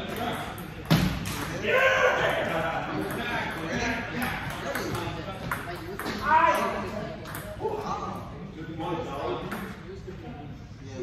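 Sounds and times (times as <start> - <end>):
voices echoing in a hall: 0.0 - 11.0.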